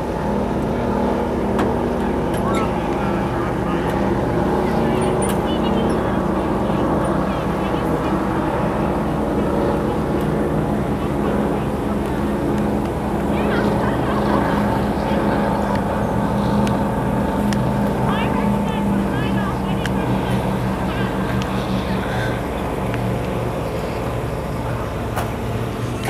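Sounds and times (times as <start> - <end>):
powerboat engine drone: 0.0 - 26.0.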